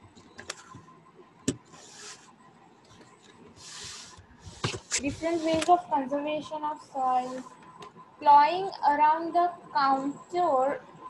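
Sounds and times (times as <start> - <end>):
soft rubbing sounds: 1.6 - 5.9, 6.9 - 7.8.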